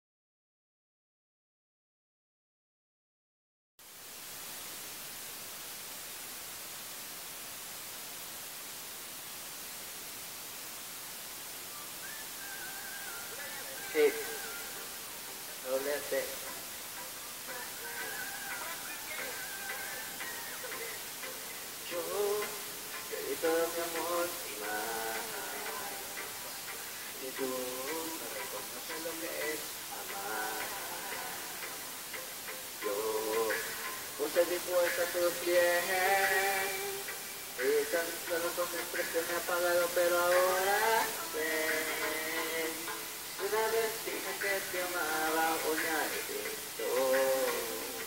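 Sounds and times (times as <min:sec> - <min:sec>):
steady recording hiss: 0:03.8 - 0:48.0
sparse ticking backing beat: 0:13.9 - 0:48.0.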